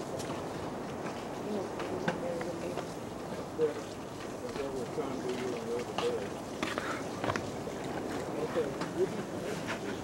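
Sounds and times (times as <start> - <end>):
sea water washing: 0.0 - 10.0.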